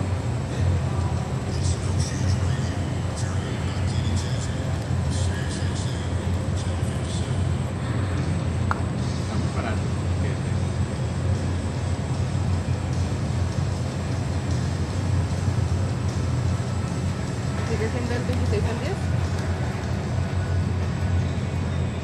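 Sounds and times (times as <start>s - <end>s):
indoor arena rumble and hum: 0.0s - 22.0s.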